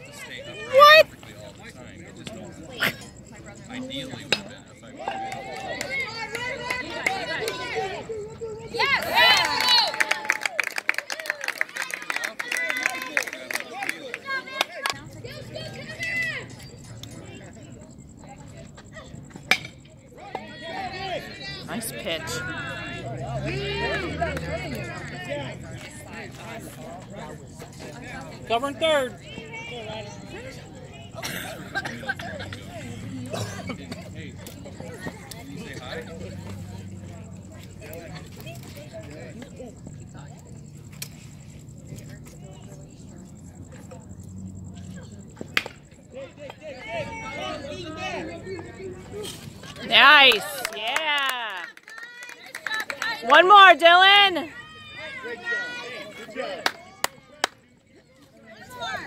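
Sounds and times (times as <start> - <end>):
spectators shouting: 0.0 - 1.1, 4.9 - 16.5, 20.2 - 26.2, 46.6 - 49.2, 52.1 - 57.6
distant crowd chatter: 0.0 - 59.0
voices calling out: 0.0 - 59.0.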